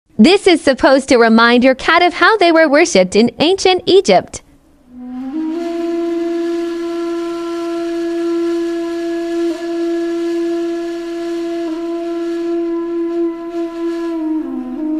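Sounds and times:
wind instrument long note: 4.9s - 14.9s.

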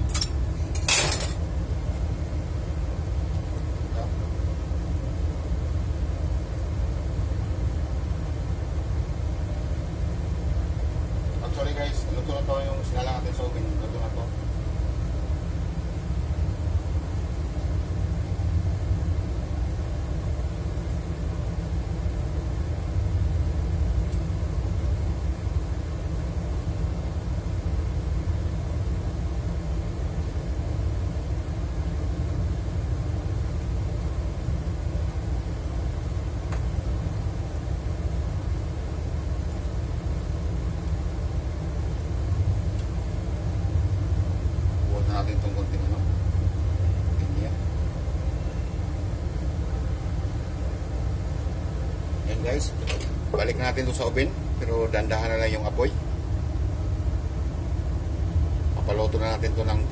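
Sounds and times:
low machine rumble: 0.0s - 59.9s.

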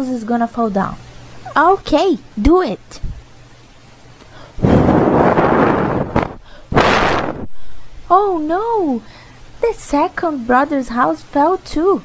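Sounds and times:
person blowing into microphone: 4.6s - 7.8s.

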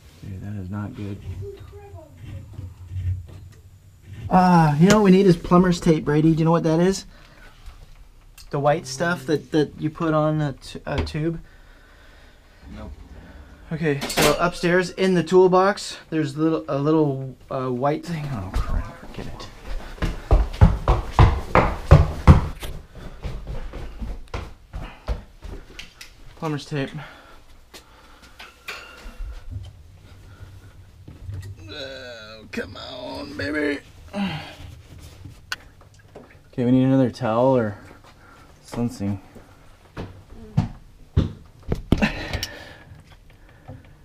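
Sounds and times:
low handling rumble: 12.5s - 15.4s
person speaking: 12.6s - 19.6s, 31.6s - 34.5s
footsteps on carpeted stairs: 18.2s - 26.4s
knocks: 20.3s - 22.6s.

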